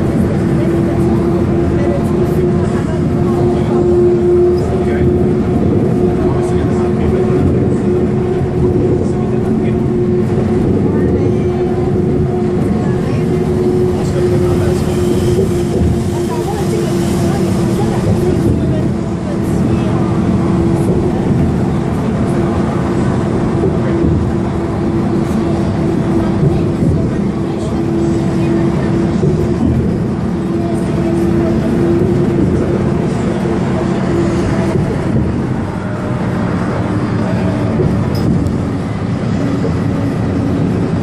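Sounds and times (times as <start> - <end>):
bus engine and road rumble: 0.0 - 41.0.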